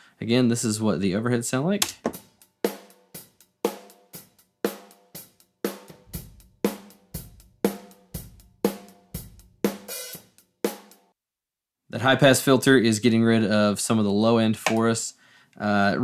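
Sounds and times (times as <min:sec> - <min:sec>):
snare and cymbal hits: 0:02.1 - 0:11.1.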